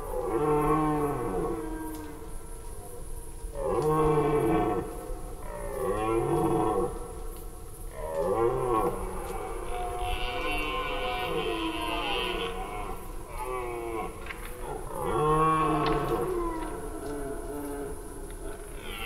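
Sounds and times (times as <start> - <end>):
red deer stags roaring: 7.9 - 19.0.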